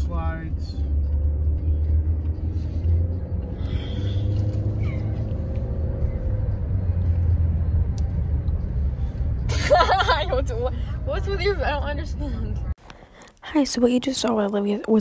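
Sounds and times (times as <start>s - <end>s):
car cabin road rumble: 0.0s - 12.9s.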